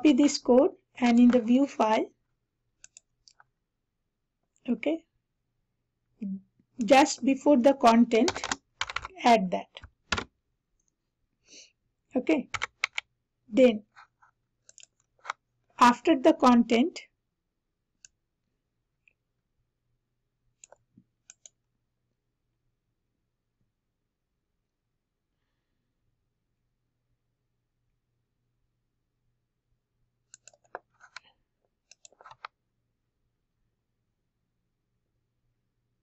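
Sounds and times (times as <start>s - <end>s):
computer mouse clicks: 2.8s - 3.5s, 8.2s - 10.9s, 12.4s - 13.1s, 14.0s - 15.4s, 20.6s - 21.6s, 30.3s - 31.3s, 31.9s - 32.6s
faint computer mouse clicks: 2.8s - 3.5s, 14.7s - 15.4s, 20.6s - 21.6s, 30.3s - 31.3s, 31.9s - 32.5s.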